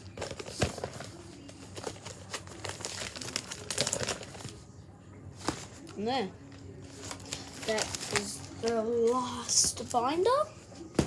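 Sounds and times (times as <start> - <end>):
plastic sleeves crinkling: 0.0 - 4.6, 6.8 - 9.4.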